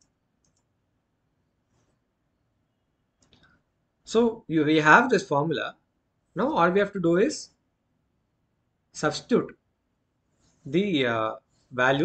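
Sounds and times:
faint short clicks: 0.0s - 0.7s.

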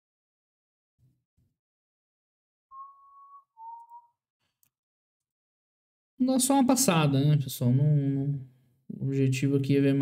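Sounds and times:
person whistling two notes: 2.7s - 4.2s.

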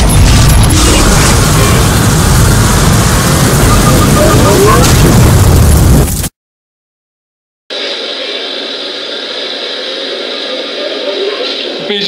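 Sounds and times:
fire explosion blast: 0.0s - 6.3s
steady hissing noise: 7.7s - 12.0s.

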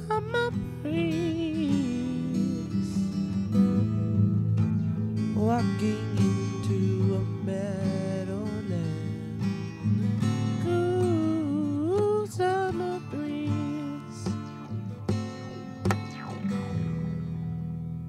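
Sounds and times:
strummed acoustic guitar: 0.0s - 18.0s.

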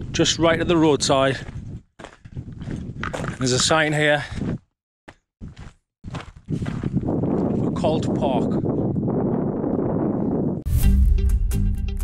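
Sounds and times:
wind buffeting microphone: 0.0s - 4.7s, 5.4s - 10.7s
background music: 10.7s - 12.0s.

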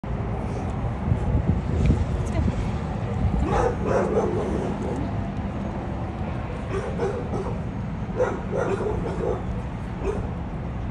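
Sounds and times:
wind rumble on microphone: 0.0s - 10.9s.

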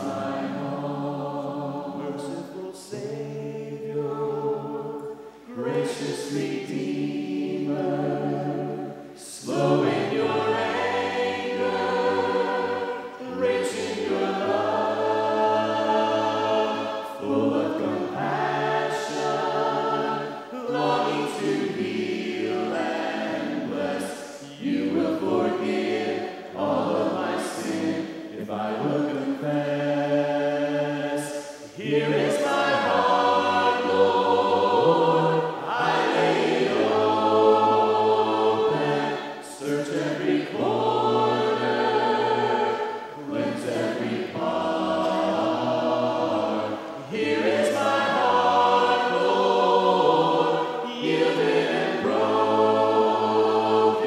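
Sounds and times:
group singing in harmony: 0.0s - 54.0s.

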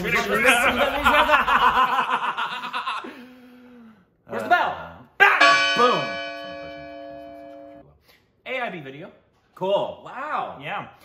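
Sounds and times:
bell ringing: 5.4s - 7.8s.

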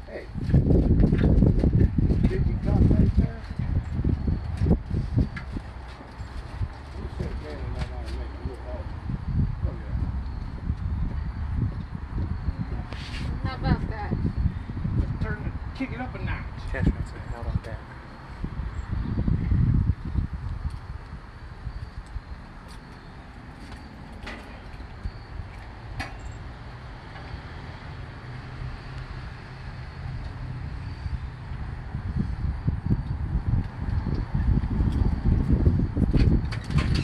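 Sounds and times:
gusty wind on microphone: 0.0s - 22.6s, 23.2s - 37.0s.

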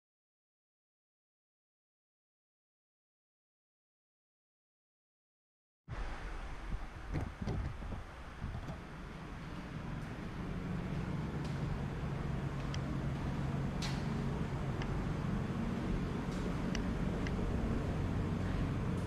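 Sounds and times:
air system low hum: 5.9s - 19.0s.

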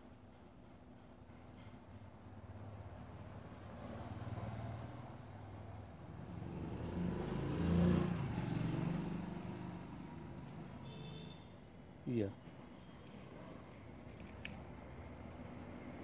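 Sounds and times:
vehicle engine passing by: 2.6s - 10.8s.

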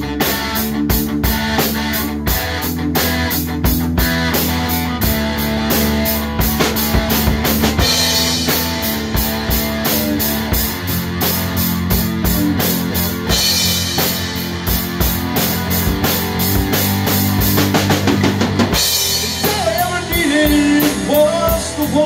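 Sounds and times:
bass guitar: 0.0s - 22.0s
drum kit beat: 0.0s - 22.0s
electric guitar: 0.0s - 22.0s.

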